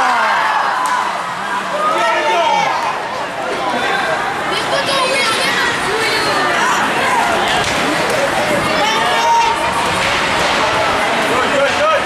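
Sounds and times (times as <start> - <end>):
crowd hubbub of talk: 0.0 - 12.0.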